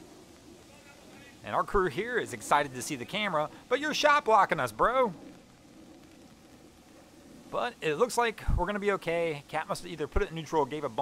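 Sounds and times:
faint rain hiss: 0.0s - 11.0s.

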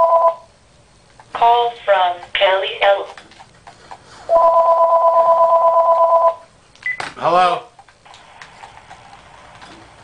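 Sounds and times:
telephone ringing: 0.0s - 0.5s, 4.3s - 6.5s.

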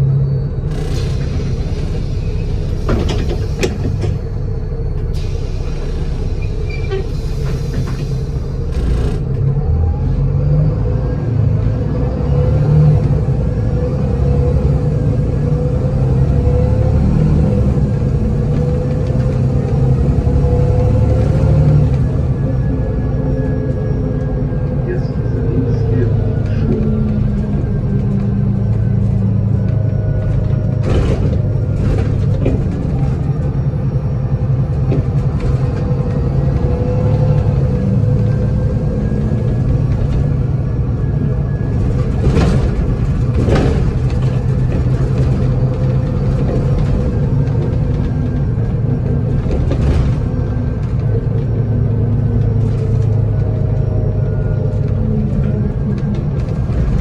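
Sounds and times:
bus diesel engine running: 0.0s - 57.0s
bus body knocks and rattles: 2.8s - 4.4s, 26.5s - 37.6s, 39.1s - 54.2s.

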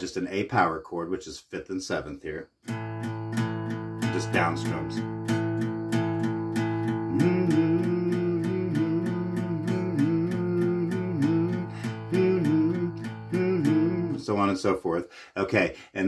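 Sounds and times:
acoustic guitar strumming: 2.5s - 15.1s
man singing: 4.0s - 5.2s, 6.2s - 16.0s.

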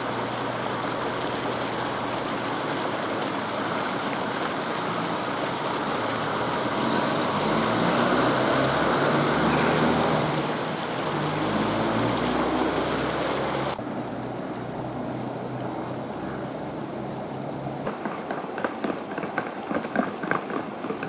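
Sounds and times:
vehicle passing: 4.9s - 16.6s.

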